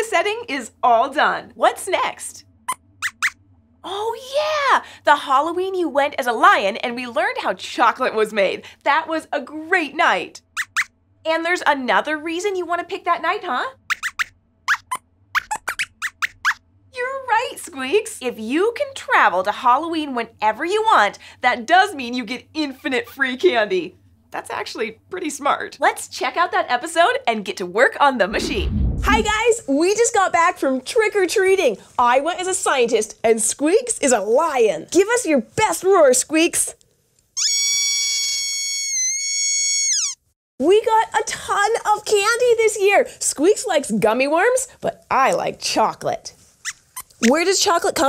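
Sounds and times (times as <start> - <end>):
puppet's squeaky chattering: 2.7 - 3.4, 10.4 - 10.9, 13.8 - 16.6, 37.4 - 40.3, 46.6 - 47.4
long high-pitched squeak: 37.4 - 40.4.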